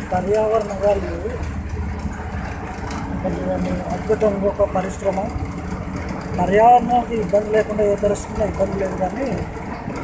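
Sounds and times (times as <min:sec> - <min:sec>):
vehicle engine and tyres rumbling: 0:00.0 - 0:10.0.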